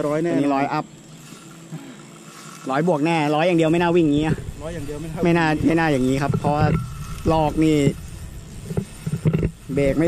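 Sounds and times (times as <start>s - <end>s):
fishing reel ticking: 0.0s - 10.0s.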